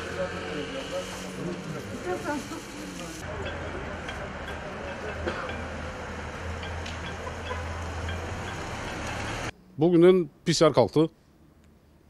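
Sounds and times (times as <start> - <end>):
low traffic hum: 0.0 - 12.0.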